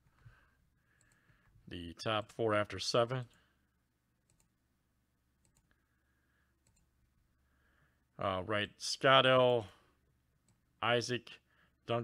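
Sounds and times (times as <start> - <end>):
computer mouse clicks: 4.3 - 4.5, 5.4 - 5.8, 6.6 - 6.9.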